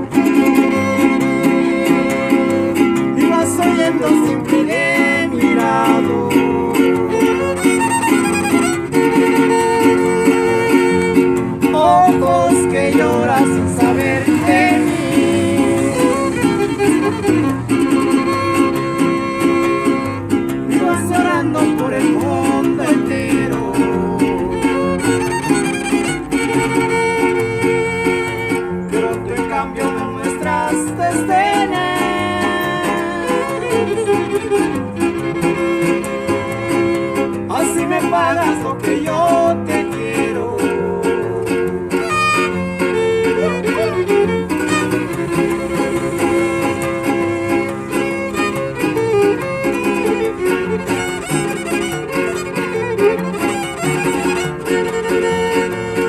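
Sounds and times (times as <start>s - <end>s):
strummed guitars: 0.0s - 56.0s
violin melody: 0.0s - 56.0s.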